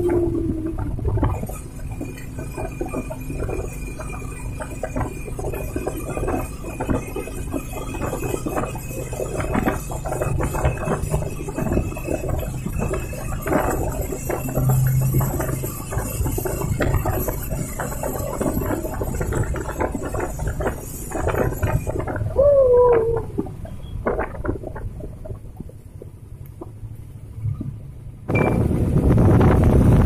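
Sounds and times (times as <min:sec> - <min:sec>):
rattling and clicking: 0:00.0 - 0:27.8
vehicle hum in tunnel: 0:00.0 - 0:30.0.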